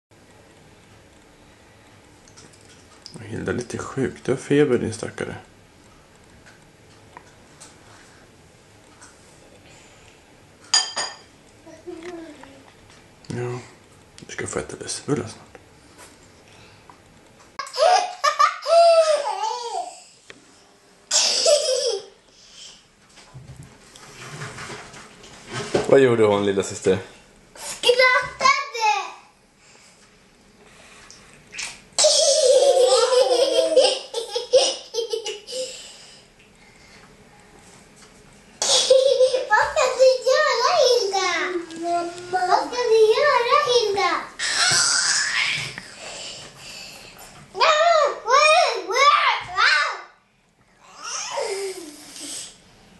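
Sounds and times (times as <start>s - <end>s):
baby laughing: 17.6s - 20.0s, 21.2s - 22.1s, 32.0s - 35.7s, 38.6s - 39.6s
child laughing: 17.6s - 20.0s, 21.1s - 22.2s, 32.0s - 35.8s, 38.6s - 41.2s, 51.0s - 52.0s.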